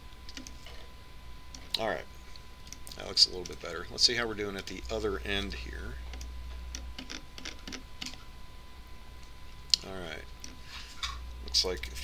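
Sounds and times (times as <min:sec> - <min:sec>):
faint steady hum: 0:00.0 - 0:12.0
keyboard and mouse clicks: 0:00.3 - 0:00.6, 0:06.1 - 0:08.2.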